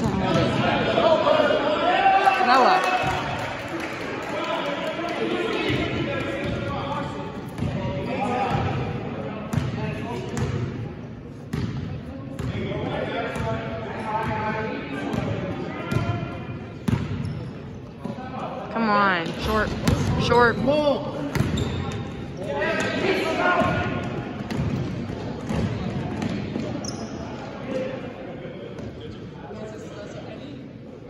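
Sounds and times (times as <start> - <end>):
basketball bouncing on gym floor: 7.5 - 7.8, 16.8 - 17.4, 21.2 - 22.0, 23.6 - 26.9.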